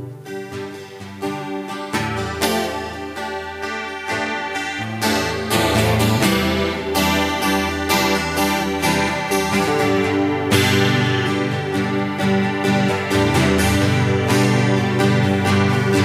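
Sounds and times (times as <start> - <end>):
acoustic guitar strumming chords: 0.0 - 16.0.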